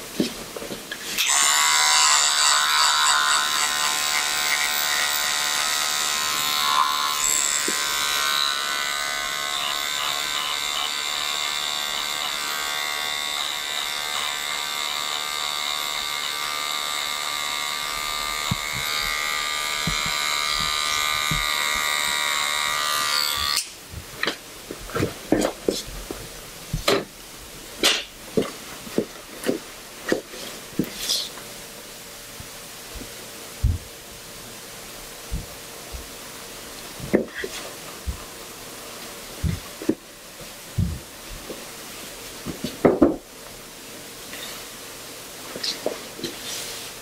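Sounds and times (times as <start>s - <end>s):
electric trimmer buzzing: 1.1s - 24.4s, 37.0s - 38.4s, 39.3s - 40.0s.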